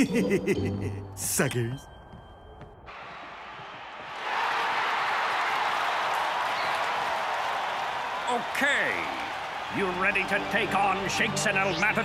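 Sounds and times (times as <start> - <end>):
stadium crowd noise: 2.9 - 12.0.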